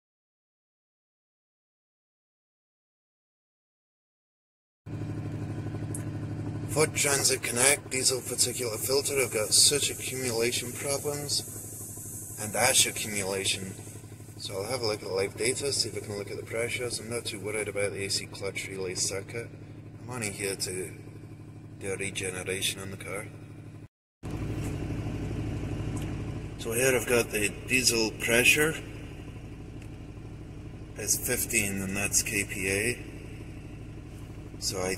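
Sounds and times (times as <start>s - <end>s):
diesel engine idling: 4.9s - 34.9s.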